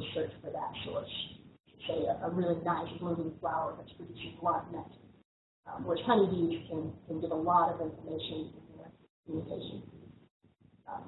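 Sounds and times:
person speaking: 0.0 - 5.0, 5.7 - 9.9.

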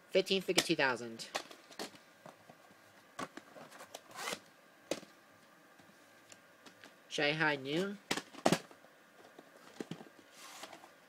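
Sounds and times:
plastic scraping slide: 9.6 - 11.0.

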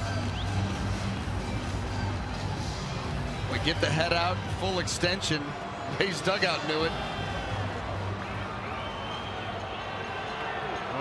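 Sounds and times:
stadium crowd hubbub: 0.0 - 11.0.

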